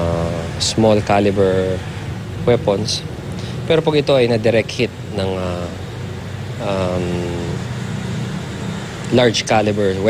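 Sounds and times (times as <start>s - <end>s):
man saying um: 0.0s - 1.8s, 6.6s - 7.6s.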